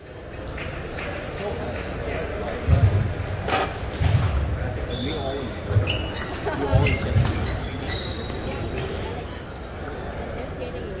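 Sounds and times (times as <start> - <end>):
background chatter: 0.0 - 11.0
shoe squeaks: 1.5 - 2.1, 2.7 - 3.8, 4.7 - 9.9.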